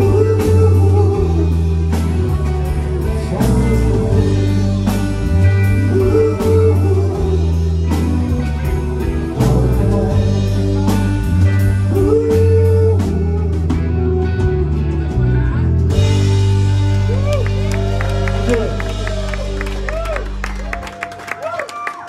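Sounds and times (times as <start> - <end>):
drum kit beat: 0.0 - 20.8
electric and acoustic guitars: 0.0 - 21.2
bass guitar: 0.0 - 21.6.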